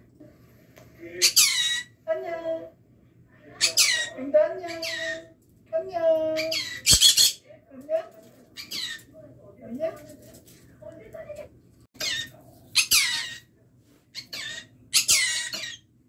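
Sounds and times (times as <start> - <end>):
parrot chattering calls: 1.2 - 1.9, 3.6 - 4.1, 4.7 - 5.3, 6.4 - 7.4, 12.0 - 13.5, 14.2 - 15.9
parrot screeching calls: 1.2 - 2.0, 3.6 - 4.1, 4.7 - 5.3, 6.4 - 7.4, 8.6 - 9.1, 12.0 - 13.5, 14.2 - 15.9.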